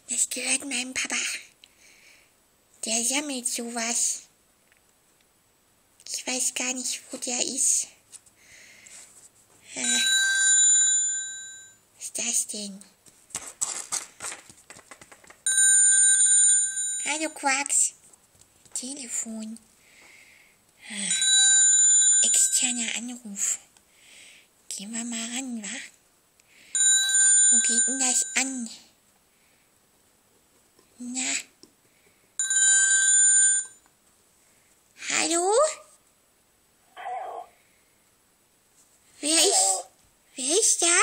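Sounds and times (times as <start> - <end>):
cordless phone ringtone: 9.8 - 11.8, 15.5 - 17.2, 21.1 - 22.7, 26.8 - 28.6, 32.4 - 33.8
rustling handling noise: 13.0 - 15.5.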